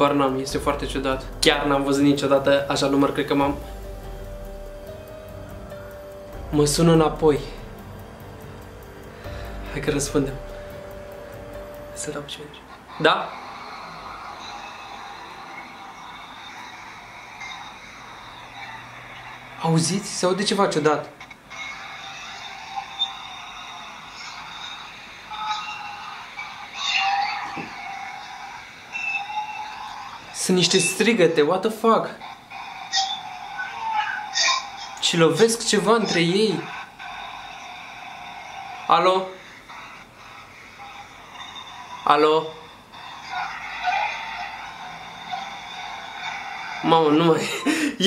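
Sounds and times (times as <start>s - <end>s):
tinny shouting and screaming on phone: 12.1s - 47.7s.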